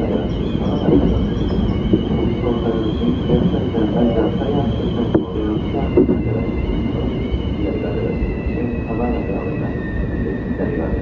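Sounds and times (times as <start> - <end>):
train wheels rumbling on rail: 0.0 - 11.0.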